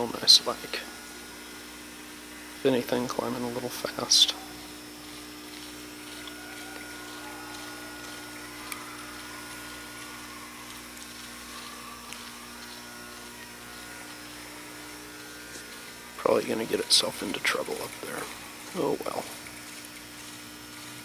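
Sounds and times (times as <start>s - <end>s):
ventilation hum: 0.0s - 21.0s.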